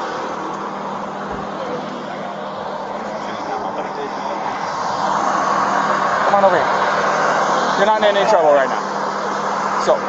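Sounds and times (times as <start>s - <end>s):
low engine hum: 0.0s - 10.0s
rushing traffic hiss: 0.0s - 10.0s.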